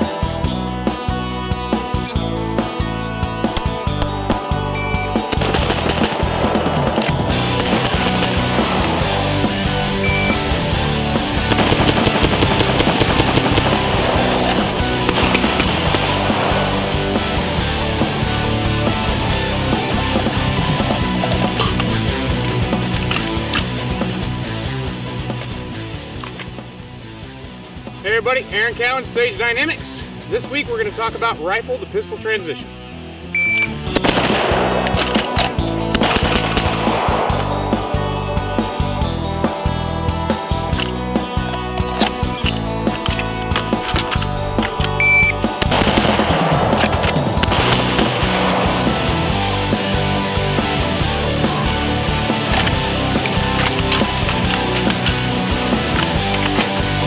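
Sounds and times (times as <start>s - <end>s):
rock music: 0.0s - 57.0s
rapid gunshots: 5.2s - 9.5s, 11.3s - 17.1s, 33.9s - 37.8s, 43.6s - 49.7s.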